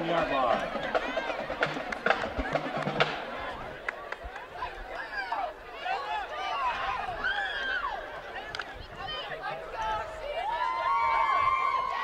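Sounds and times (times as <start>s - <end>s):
crowd voices and calls: 0.0s - 12.0s.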